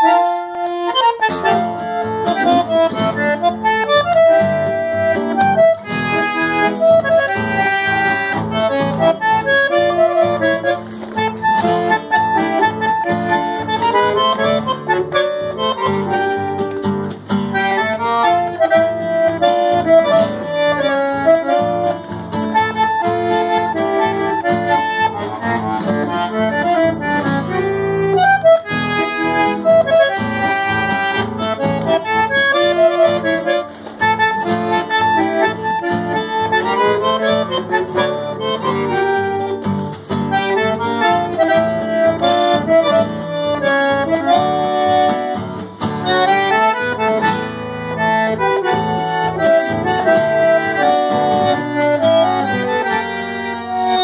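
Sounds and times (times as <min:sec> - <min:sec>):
acoustic guitar accompaniment: 0:00.0 - 0:54.0
bandoneon melody: 0:00.0 - 0:54.0.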